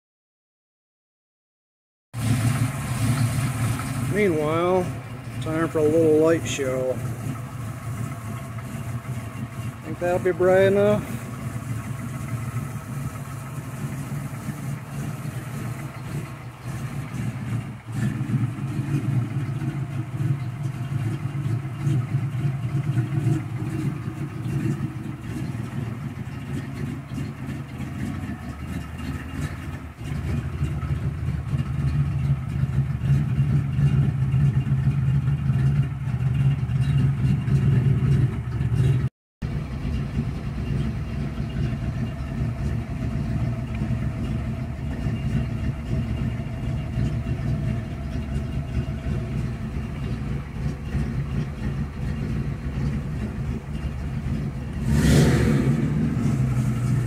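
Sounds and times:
pickup engine idling: 2.2s - 57.0s.

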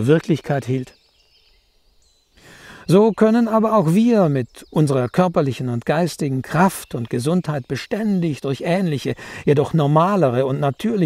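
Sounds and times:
man speaking: 0.0s - 0.9s, 2.7s - 11.0s
man breathing in: 2.4s - 2.9s, 9.2s - 9.5s.

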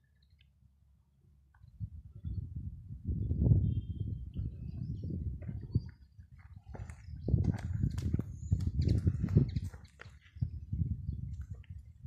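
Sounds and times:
wind buffeting microphone: 1.6s - 12.0s.

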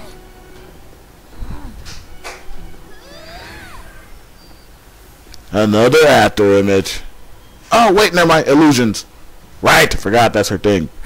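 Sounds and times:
low steady hum: 0.0s - 9.6s.

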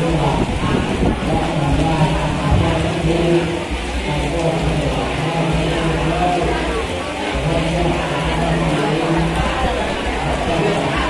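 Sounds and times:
crowd voices talking: 0.0s - 11.0s.

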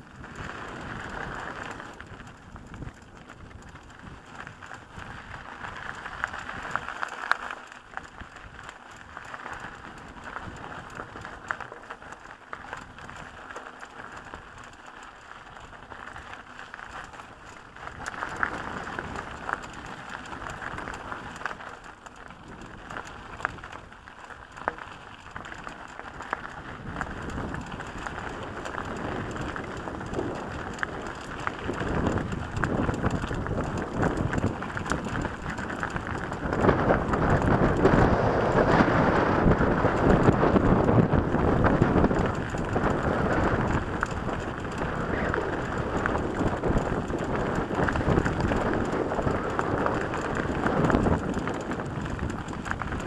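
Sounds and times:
bike clicks and rattles: 0.0s - 53.0s
tyres crunching on gravel: 0.3s - 53.0s.

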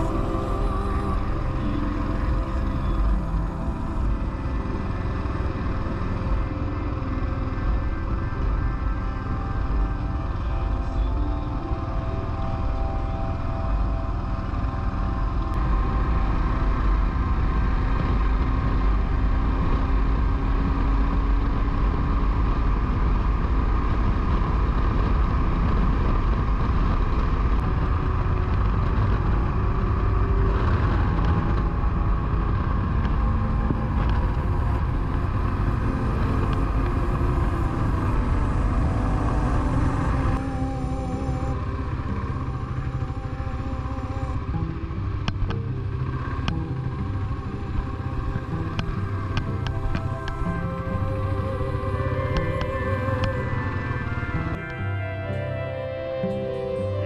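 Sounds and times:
motorcycle engine: 0.0s - 57.0s
wind noise: 0.0s - 57.0s.

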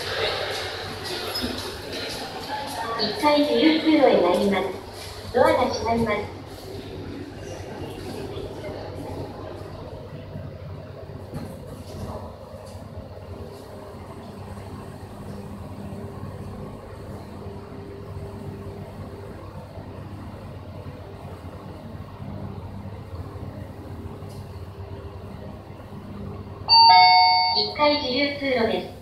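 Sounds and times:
elevator hum: 0.0s - 29.0s.

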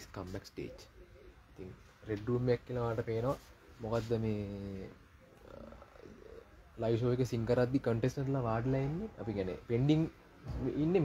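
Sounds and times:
man speaking: 0.0s - 11.0s
faint wavering voice: 4.7s - 6.8s.

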